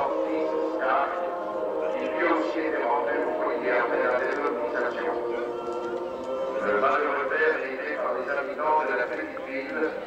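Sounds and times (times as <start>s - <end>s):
steady drone: 0.0s - 10.0s
voices talking: 0.0s - 10.0s.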